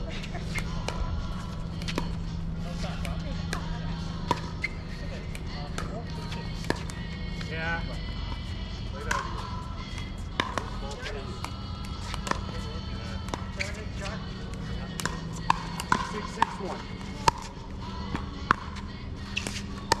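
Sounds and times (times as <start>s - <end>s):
steady low rumble: 0.0s - 20.0s
paddles hitting plastic ball: 10.2s - 12.6s, 14.5s - 17.5s.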